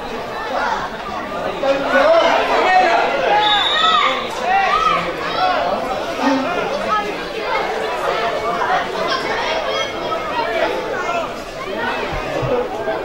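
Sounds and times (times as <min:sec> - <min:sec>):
children calling and shouting: 0:00.0 - 0:13.0.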